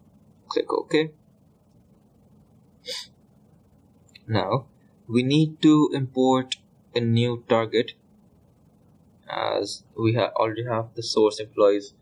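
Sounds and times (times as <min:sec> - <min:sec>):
faint steady hiss: 0:00.0 - 0:12.0
sharp intake of breath: 0:02.8 - 0:03.2.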